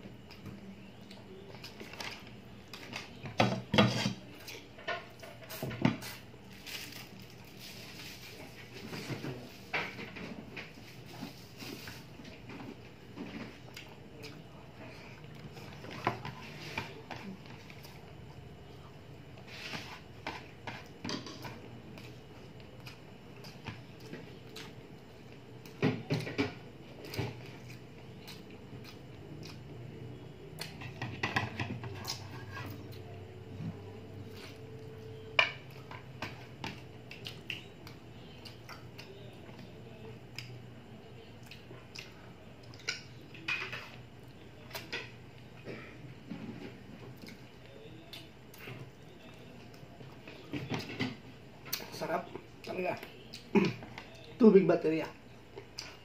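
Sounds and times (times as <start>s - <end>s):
person chewing: 22.8s - 25.8s, 26.9s - 29.8s, 30.6s - 30.8s, 36.8s - 40.6s, 41.4s - 43.4s, 52.6s - 54.3s.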